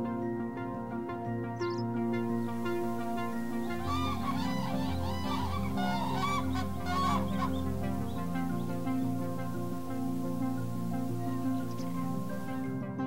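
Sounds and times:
background music: 0.0 - 13.0
cranes calling: 1.7 - 12.7.

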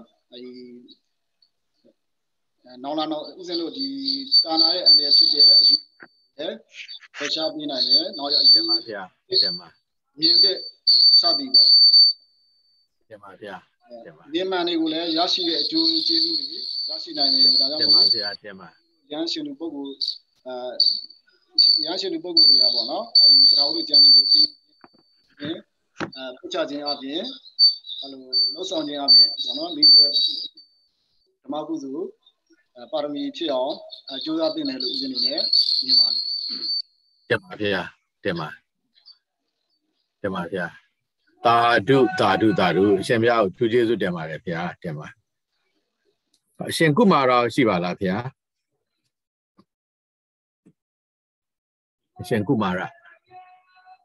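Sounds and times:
man speaking: 0.0 - 0.9, 2.7 - 5.8, 6.4 - 11.7, 13.1 - 20.9, 21.7 - 24.5, 25.4 - 27.4, 28.0 - 30.3, 31.4 - 32.1, 32.8 - 36.2, 37.3 - 38.6, 40.2 - 40.8, 41.4 - 45.1, 46.6 - 48.3, 52.2 - 54.0
high steady whistling tone: 2.9 - 12.2, 13.9 - 18.7, 19.4 - 37.5, 41.4 - 44.7.

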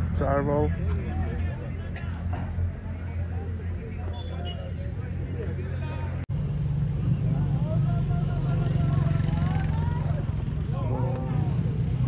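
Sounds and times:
distant people talking: 0.1 - 12.0.

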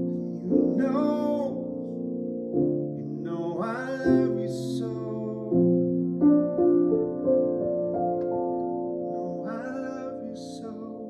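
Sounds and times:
man singing: 0.0 - 1.8, 3.0 - 5.9, 9.1 - 11.0
upright piano chords: 0.0 - 11.0.

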